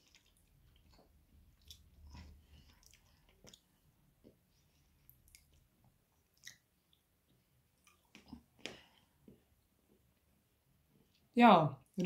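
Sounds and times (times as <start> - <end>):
faint chewing: 0.0 - 9.4.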